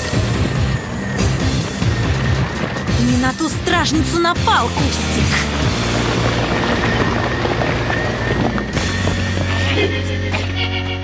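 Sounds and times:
deep low drone: 0.0s - 11.0s.

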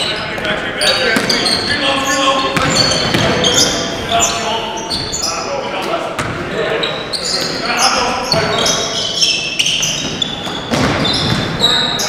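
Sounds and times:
sneakers squeaking: 0.0s - 12.0s
basketball bouncing: 1.2s - 1.5s, 2.5s - 3.7s, 6.2s - 6.4s, 9.8s - 11.6s.

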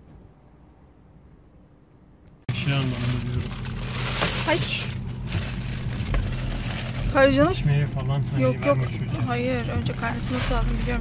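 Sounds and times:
car engine hum: 2.4s - 11.0s
car cabin rumble: 2.5s - 11.0s.

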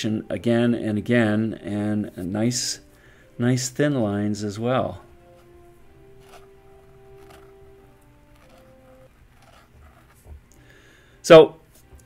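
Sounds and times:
quiet background music: 0.0s - 12.0s
pen nib scratching on paper: 6.1s - 10.5s.

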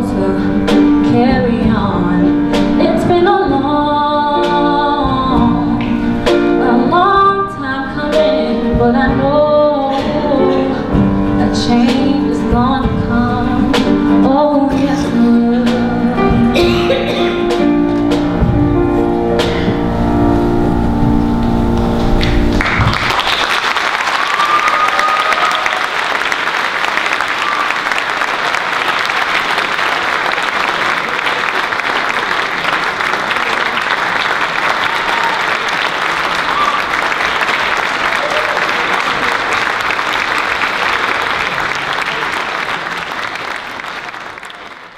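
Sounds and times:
audience applauding: 22.2s - 44.9s.

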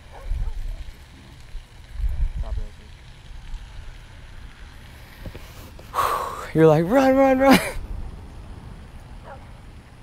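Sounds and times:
wind rumbling on microphone: 0.0s - 5.8s.

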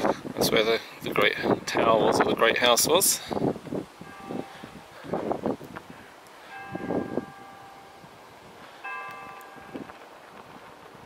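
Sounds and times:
bell ringing: 4.0s - 5.1s, 6.5s - 8.2s, 8.8s - 10.0s.

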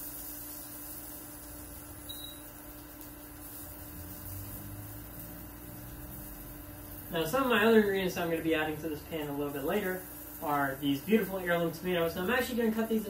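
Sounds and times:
induction burner electrical hum: 0.0s - 13.0s.

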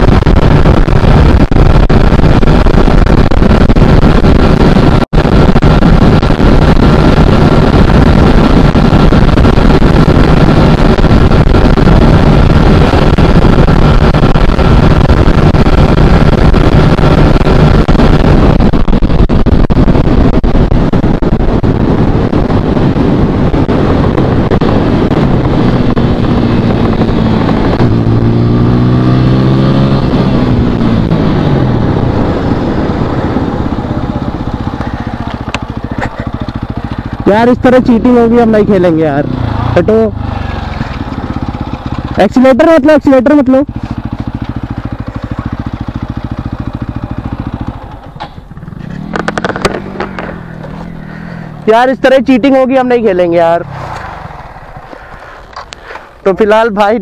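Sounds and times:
motorcycle engine running hard: 0.0s - 57.0s
wind rush on microphone: 0.0s - 57.0s.

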